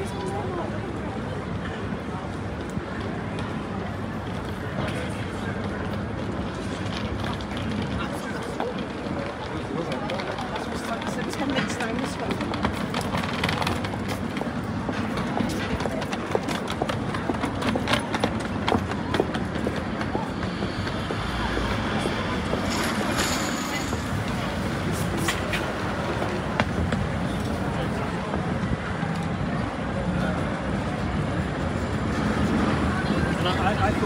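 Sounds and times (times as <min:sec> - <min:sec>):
low traffic rumble: 0:00.0 - 0:34.0
passers-by talking indistinctly: 0:00.0 - 0:34.0.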